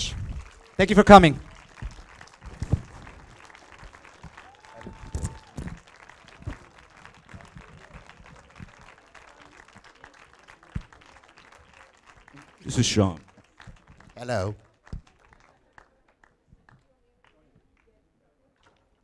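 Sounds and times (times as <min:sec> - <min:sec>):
held call from audience: 0:00.0 - 0:13.4
audience applauding: 0:00.0 - 0:16.4.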